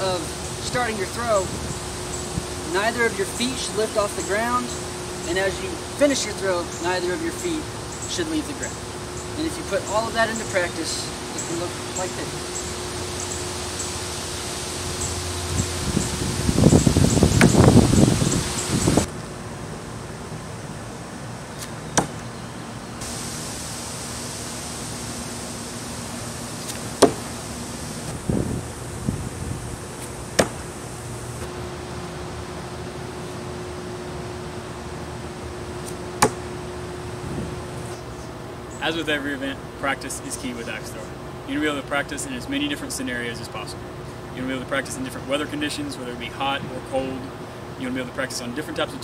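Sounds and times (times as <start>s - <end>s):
axe thunking into wooden log: 22.0s - 22.2s, 27.0s - 27.2s, 30.4s - 30.7s, 36.2s - 36.4s
rough burst of noise: 23.0s - 31.4s.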